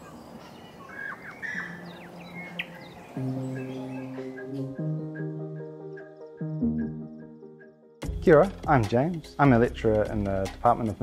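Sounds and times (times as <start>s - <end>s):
birds chirping: 0.0s - 7.8s.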